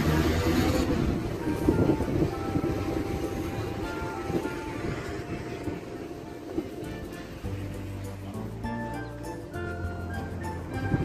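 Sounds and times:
light background music: 0.0s - 11.0s
road traffic rumble: 0.0s - 11.0s
wind on microphone: 0.0s - 11.0s.

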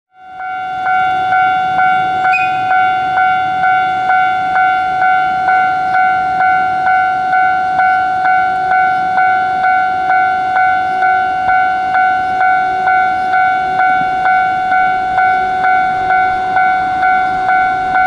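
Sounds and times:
level crossing alarm bell: 0.1s - 18.0s.

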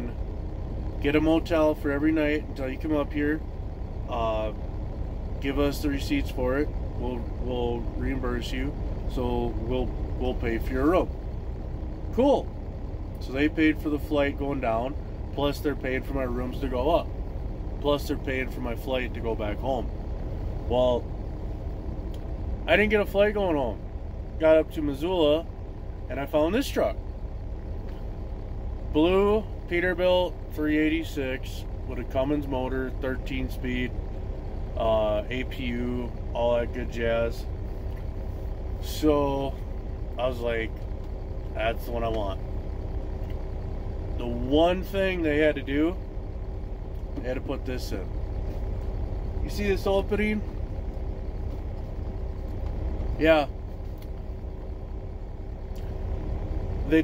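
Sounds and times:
faint steady hum: 0.0s - 57.0s
truck engine rumble: 0.0s - 57.0s.

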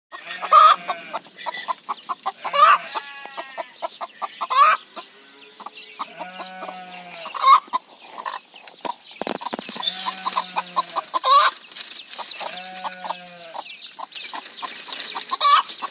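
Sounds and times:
hen clucking: 0.1s - 15.9s.

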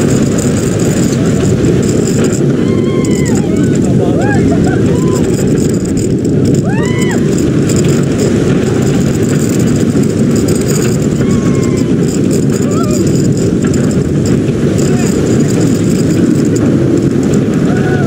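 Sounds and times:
roller coaster wheels on track: 0.0s - 18.0s
wind roar: 0.0s - 18.0s
faint rider voices: 2.8s - 5.6s, 14.7s - 15.8s.

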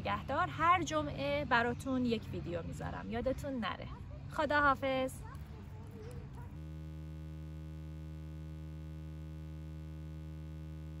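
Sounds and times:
low electronic hum: 5.7s - 11.0s.

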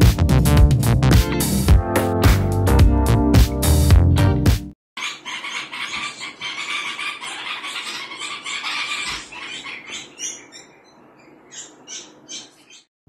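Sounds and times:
small birds chirping: 5.0s - 12.9s.

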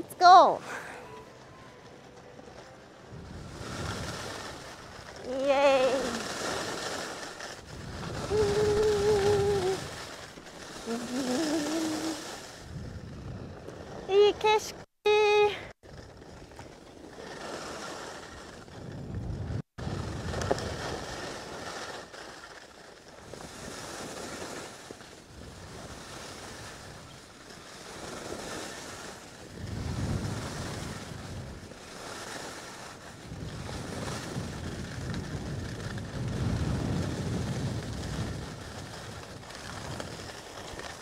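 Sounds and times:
wind rushing over microphone: 3.0s - 14.7s, 17.3s - 21.7s, 23.2s - 41.0s
skis hissing over snow: 3.4s - 12.8s, 20.0s - 35.6s, 36.2s - 41.0s.

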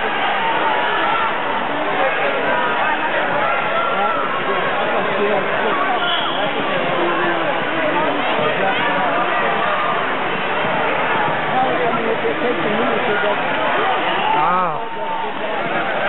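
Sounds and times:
crowd babble: 0.0s - 16.0s.

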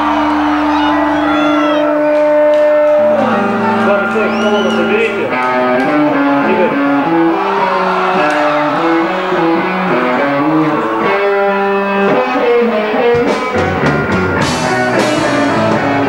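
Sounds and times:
electric guitars and bass playing: 0.0s - 16.0s.

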